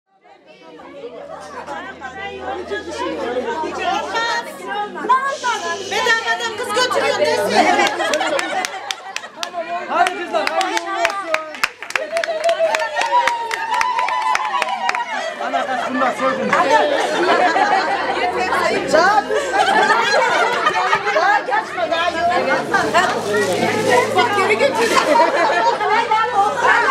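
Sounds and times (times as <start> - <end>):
women chattering: 0.1 - 13.8, 14.6 - 26.9.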